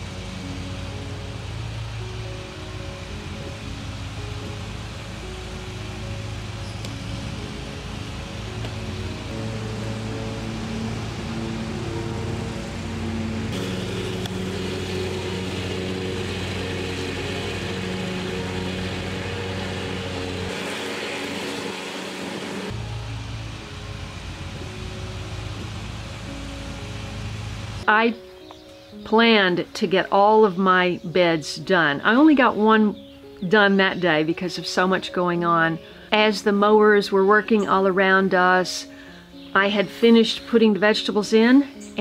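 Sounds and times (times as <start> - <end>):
riding lawn mower engine: 0.0 - 27.9
background music: 0.0 - 42.0.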